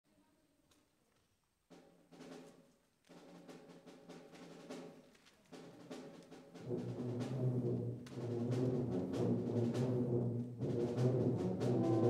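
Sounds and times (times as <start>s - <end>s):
soft drum strokes: 3.2s - 12.0s
faint brass band music: 4.6s - 12.0s.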